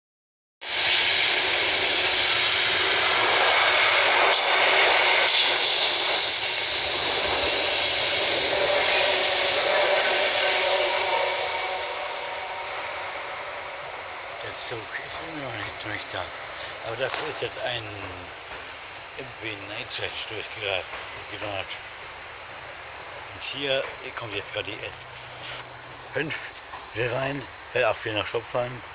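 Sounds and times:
train passing: 0.6 - 28.9.

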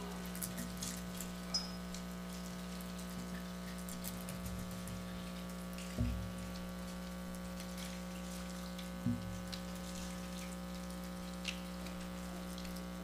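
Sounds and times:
electrical hum: 0.0 - 13.0.

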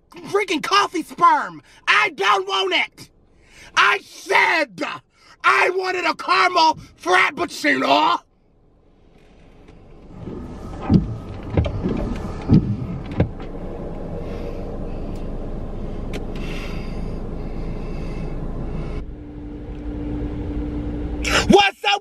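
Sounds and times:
car engine rumble inside cabin: 6.7 - 21.5
steady hum: 8.2 - 21.6.

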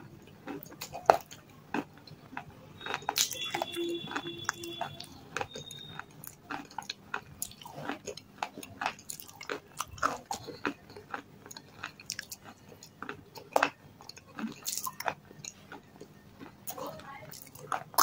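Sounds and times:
chewing crunchy stone: 0.2 - 18.0.

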